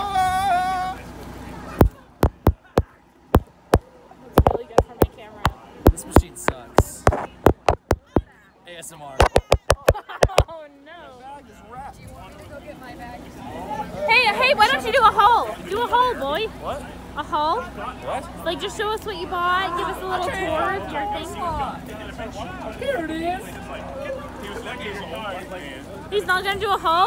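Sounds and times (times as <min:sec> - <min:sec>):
fingers knocking on a phone: 0:02.2 - 0:02.8, 0:04.4 - 0:05.1, 0:05.9 - 0:08.2, 0:09.2 - 0:10.5.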